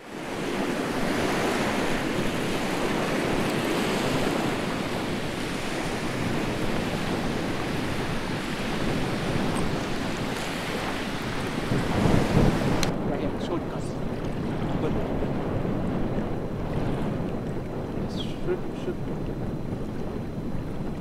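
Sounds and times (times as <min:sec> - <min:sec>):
surf washing: 0:00.0 - 0:21.0
wind buffeting microphone: 0:00.0 - 0:21.0.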